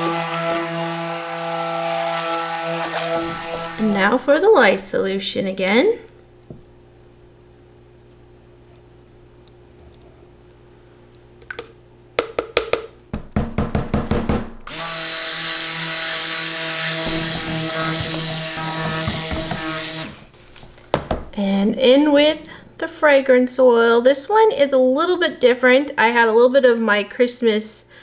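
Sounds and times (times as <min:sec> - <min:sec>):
stick blender running: 0:00.0 - 0:04.7, 0:14.7 - 0:20.3.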